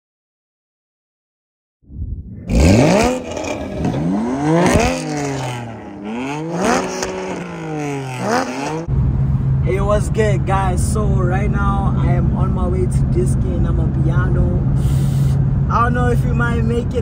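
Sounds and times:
car engines revving through gears: 2.5 - 8.9.

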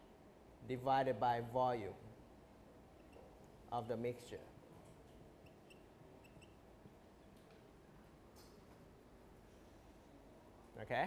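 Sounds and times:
marker pen squeaking on whiteboard: 5.4 - 6.6.

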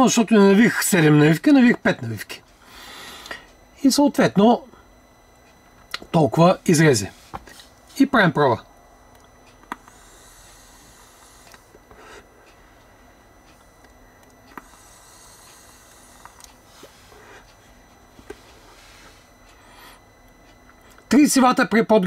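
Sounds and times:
vape airy hiss: 9.8 - 12.2, 14.5 - 17.3.

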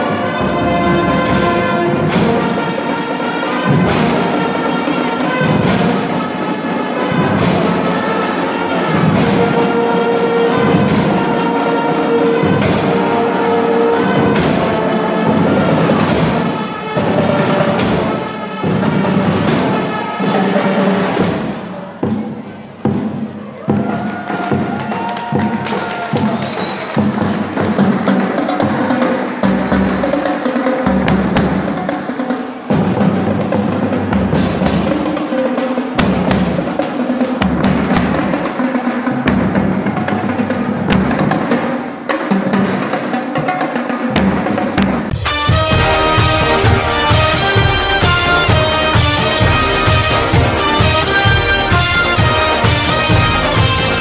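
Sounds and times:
marching band playing: 0.0 - 54.0
heavy bass drum strokes: 44.1 - 54.0.

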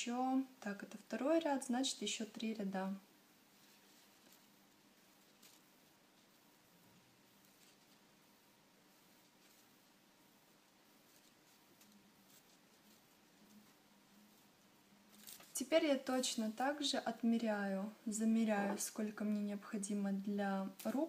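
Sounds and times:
faint steady hum: 0.0 - 21.0.

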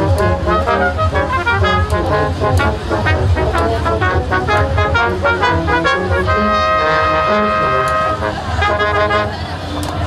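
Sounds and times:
brass ensemble playing: 0.0 - 9.8.

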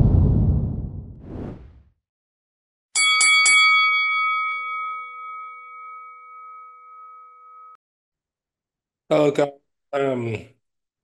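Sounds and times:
bell-like chime: 3.0 - 7.8.

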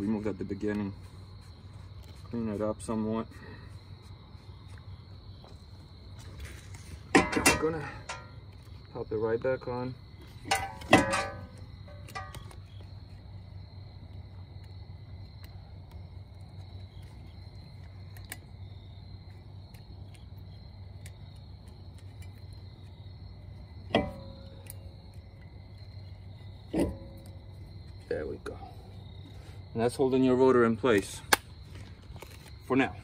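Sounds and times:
steady low hum: 0.0 - 33.0
sharp metal knocks: 7.1 - 8.4, 10.4 - 12.6, 23.8 - 24.8.

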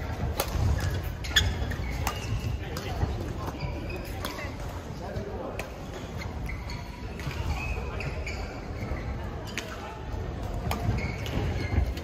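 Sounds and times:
court shoes squeaking: 0.0 - 12.0
murmur of voices: 0.0 - 12.0
racket hitting shuttlecock: 0.2 - 4.4, 10.5 - 12.0.

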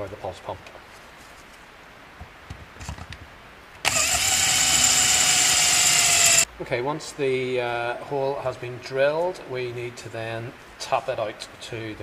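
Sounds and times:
cordless drill drilling into metal: 3.8 - 6.5.

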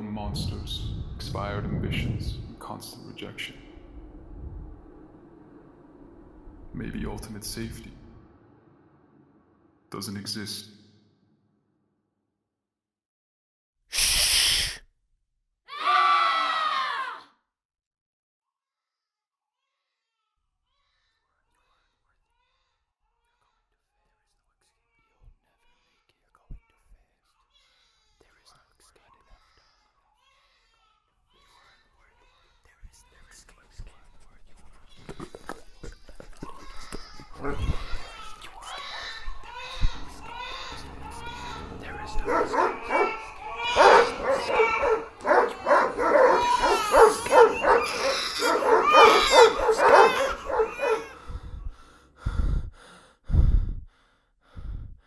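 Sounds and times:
deep booms: 0.0 - 10.2, 39.0 - 46.9
faint whispering: 23.3 - 30.2, 31.4 - 53.8
voices: 35.0 - 51.2
dogs barking and yelping: 35.8 - 38.1, 38.8 - 51.4.

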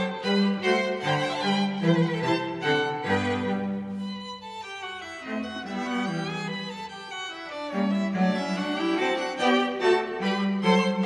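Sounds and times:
violin and cello music: 0.0 - 11.0.

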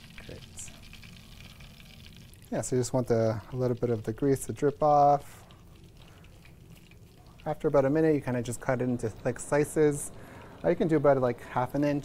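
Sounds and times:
cutlets sizzling in oil: 0.0 - 11.0.

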